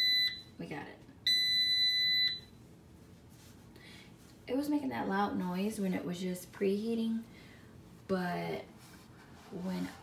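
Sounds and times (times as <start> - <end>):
air fryer beep: 0.0 - 0.6, 1.2 - 2.6.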